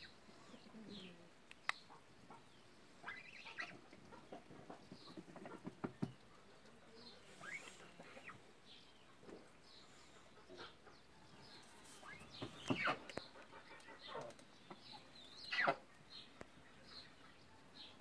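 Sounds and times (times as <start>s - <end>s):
geese calling faintly: 1.9s - 5.7s.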